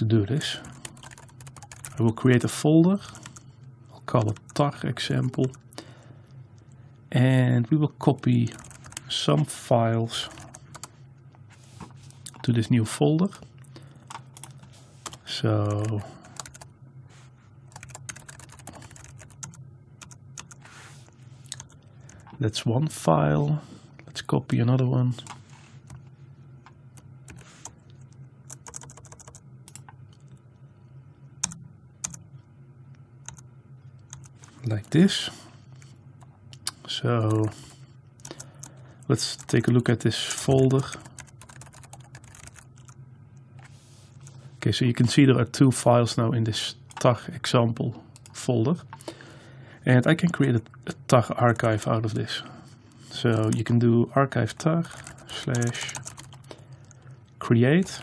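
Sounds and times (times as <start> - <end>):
computer keyboard typing: 0.6 - 2.0, 8.4 - 9.1, 10.3 - 10.9, 14.1 - 16.7, 17.7 - 20.6, 28.5 - 30.2, 31.4 - 32.2, 34.1 - 34.3, 40.6 - 43.0, 54.9 - 57.0.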